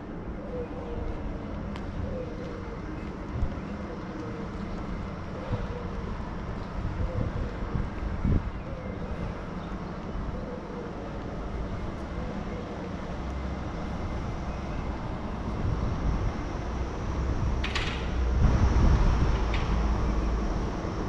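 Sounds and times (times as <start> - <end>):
low street rumble: 0.0 - 21.0.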